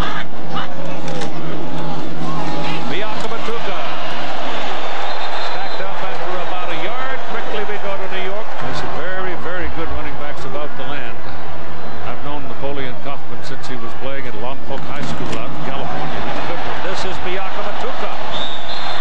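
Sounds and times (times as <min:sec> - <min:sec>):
stadium crowd voices: 0:00.0 - 0:19.0.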